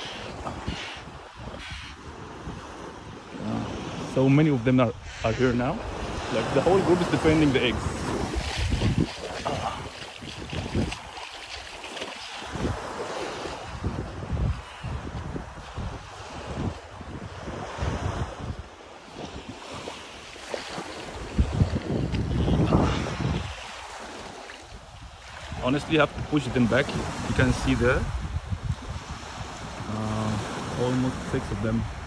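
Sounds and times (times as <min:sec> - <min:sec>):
rush of wind: 0:00.0 - 0:32.0
surf: 0:00.0 - 0:32.0
wind buffeting microphone: 0:00.0 - 0:32.0.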